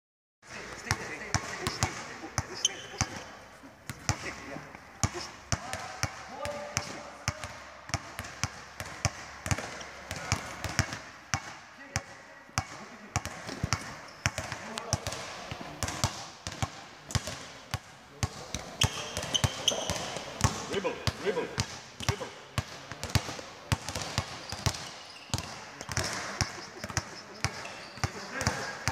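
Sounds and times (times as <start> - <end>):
basketballs bouncing on court: 0.4 - 28.9.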